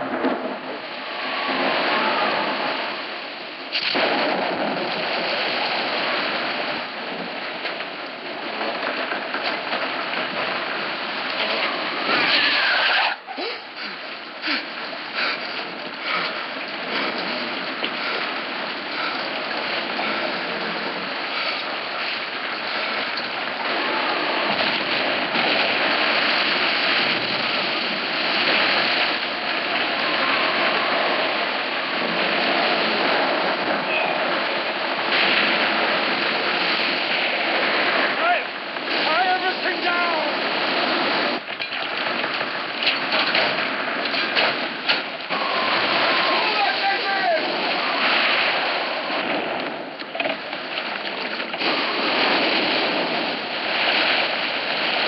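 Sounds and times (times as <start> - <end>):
crashing water: 0.0 - 55.0
heavy rain: 0.0 - 55.0.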